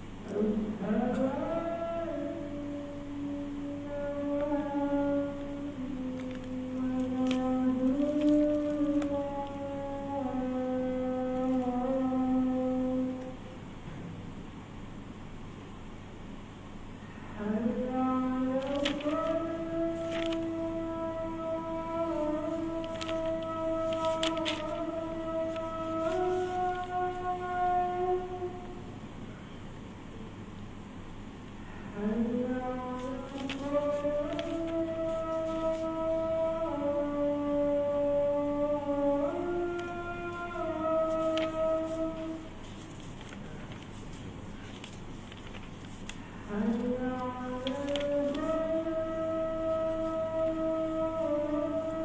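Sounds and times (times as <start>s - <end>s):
man singing call to prayer: 0.3s - 13.6s, 17.4s - 28.9s, 32.0s - 43.9s, 46.4s - 52.0s.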